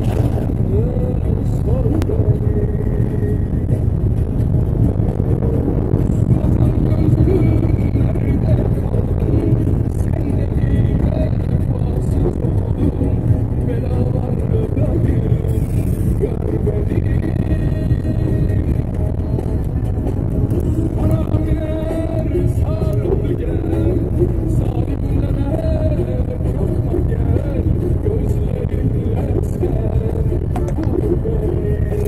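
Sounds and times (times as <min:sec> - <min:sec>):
vehicle rumble from inside cabin: 0:00.0 - 0:32.0.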